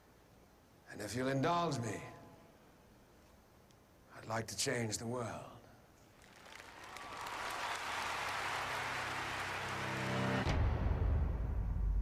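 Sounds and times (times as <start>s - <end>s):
audience applauding: 6.2s - 10.5s.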